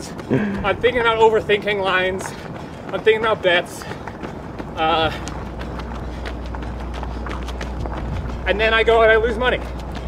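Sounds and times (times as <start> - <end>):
running footsteps on dirt: 0.0 - 10.0
steady low rumble: 0.0 - 10.0.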